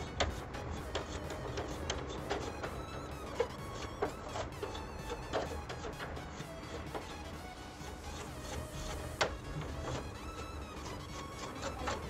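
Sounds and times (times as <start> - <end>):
background music: 0.0 - 12.0
toothbrush scrubbing metal fins: 0.0 - 12.0.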